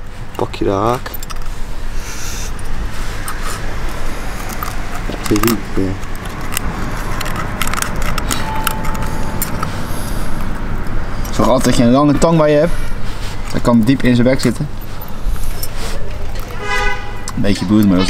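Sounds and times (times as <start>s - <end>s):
low background rumble: 0.0s - 17.3s.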